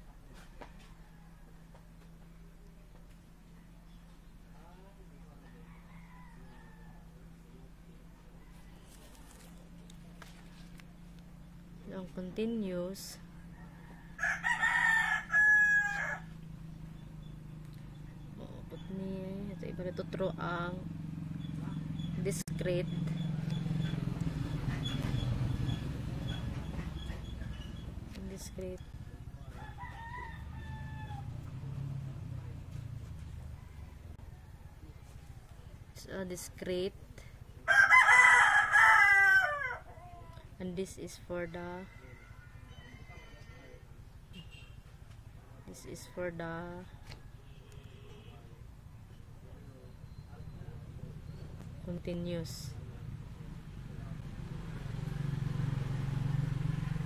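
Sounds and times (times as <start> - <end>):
rooster crowing: 5.4 - 7.4, 13.3 - 16.4, 29.0 - 32.0, 33.2 - 35.4, 37.6 - 40.3, 41.6 - 43.9.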